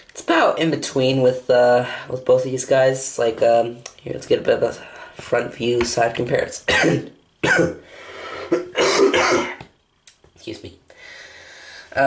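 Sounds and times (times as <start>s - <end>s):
person coughing: 6.7s - 7.8s, 8.4s - 9.6s.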